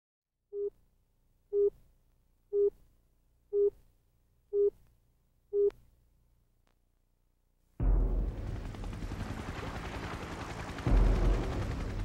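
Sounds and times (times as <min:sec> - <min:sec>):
short electronic beeps: 0:00.5 - 0:00.7, 0:01.5 - 0:01.7, 0:02.5 - 0:02.7, 0:03.6 - 0:03.8.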